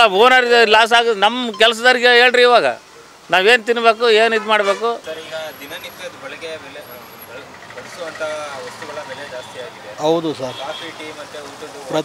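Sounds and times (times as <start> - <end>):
street traffic: 0.0 - 12.0
voices talking: 0.0 - 12.0.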